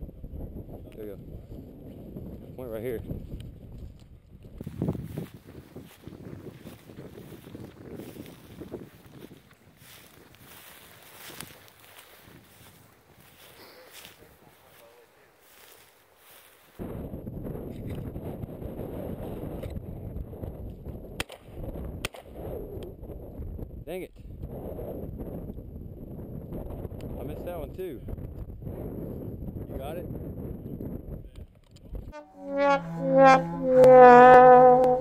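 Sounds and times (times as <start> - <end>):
wind buffeting: 0.0 - 13.6
dry grass rustling: 4.6 - 16.8.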